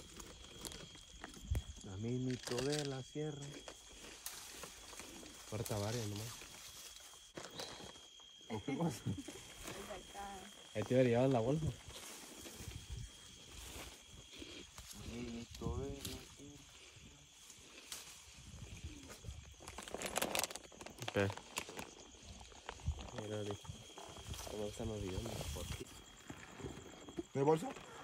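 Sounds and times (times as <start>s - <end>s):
leafy branches rustling: 2.1s - 7.9s, 9.2s - 25.9s.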